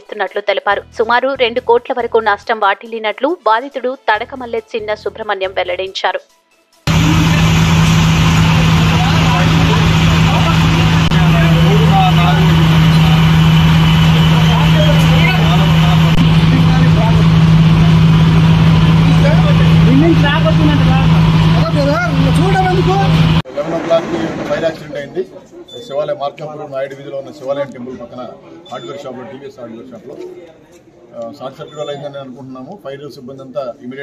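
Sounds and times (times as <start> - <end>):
hose jet rushing: 6.9 - 24.6
fire engine pump humming: 6.9 - 24.9
people calling and shouting: 6.9 - 32.4.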